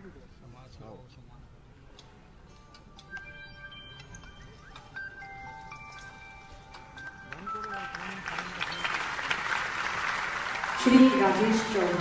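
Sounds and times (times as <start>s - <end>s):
audience applauding: 7.3s - 12.0s
person making announcement: 10.8s - 12.0s.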